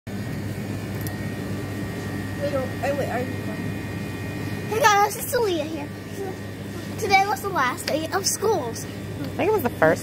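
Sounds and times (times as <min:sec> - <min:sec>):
low store hum: 0:00.1 - 0:10.0
faint high whine: 0:00.2 - 0:10.0.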